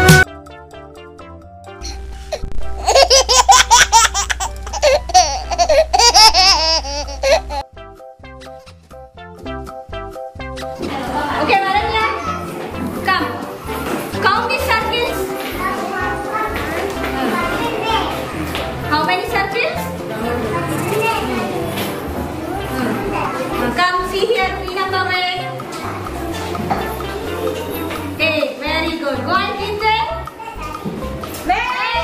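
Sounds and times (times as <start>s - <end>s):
background music: 0.0s - 32.0s
young children chattering: 10.8s - 32.0s
children laughing and squealing: 20.5s - 23.7s.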